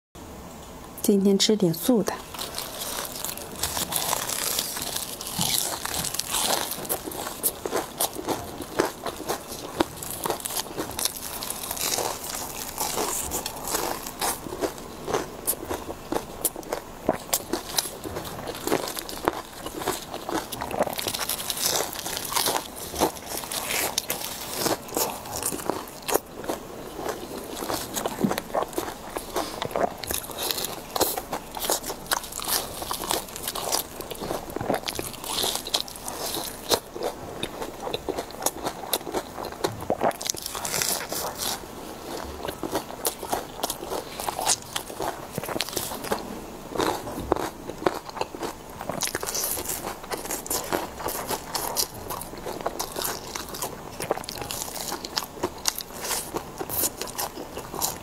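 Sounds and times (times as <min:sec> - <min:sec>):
crunchy chewing: 0:02.2 - 0:58.0.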